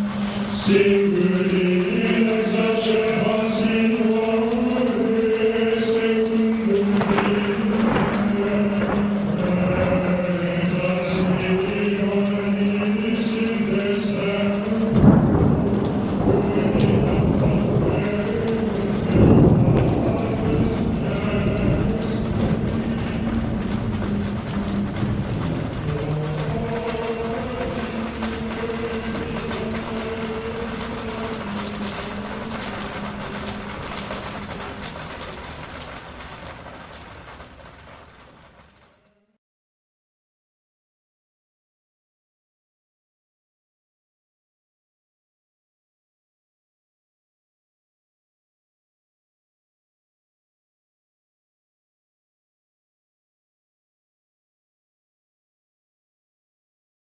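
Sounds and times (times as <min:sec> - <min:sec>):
thunder rolling: 0:00.0 - 0:38.6
rain: 0:00.0 - 0:39.4.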